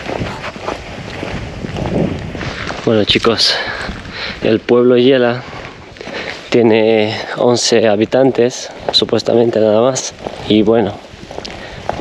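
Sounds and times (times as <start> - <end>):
footsteps on paved street: 0.0 - 12.0
wind rumbling on microphone: 0.0 - 12.0.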